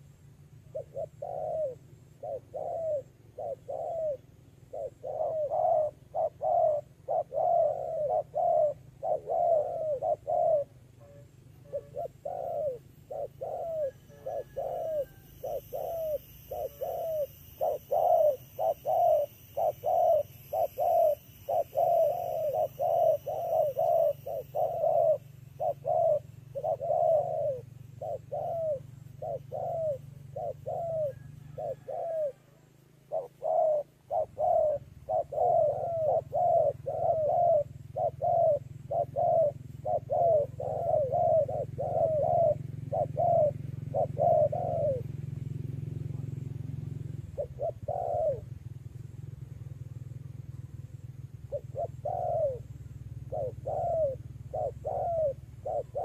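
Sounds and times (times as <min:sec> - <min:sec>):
doves cooing: 0:00.0 - 0:56.0.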